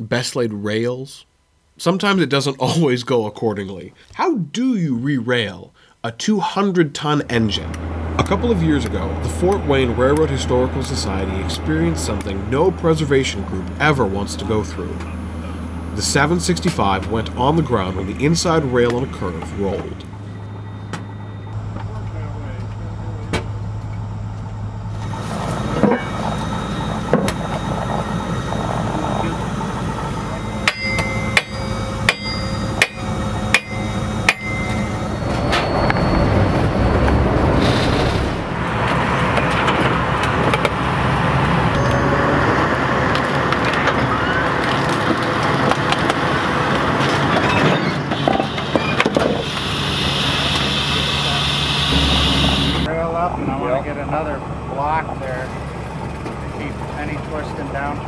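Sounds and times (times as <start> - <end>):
outdoor work noise: 7.0 - 58.0
hammer blows on steel: 30.4 - 36.0.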